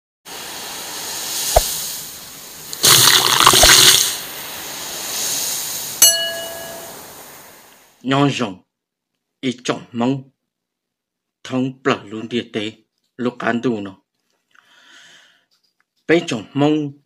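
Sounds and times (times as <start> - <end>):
surf washing on beach: 0.3 - 7.9
bell-like ding: 6.0 - 7.0.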